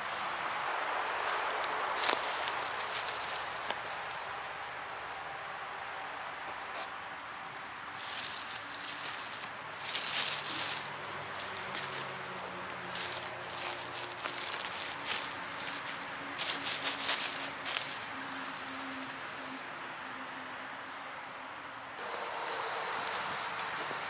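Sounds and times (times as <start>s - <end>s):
dry leaves rustling and crackling: 0.0s - 22.1s, 22.9s - 24.0s.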